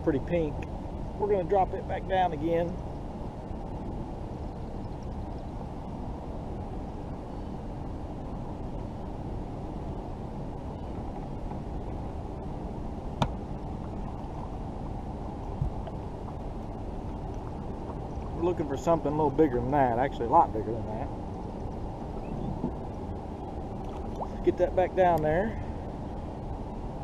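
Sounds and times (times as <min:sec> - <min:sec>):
muffled low rushing noise: 0:00.0 - 0:27.0.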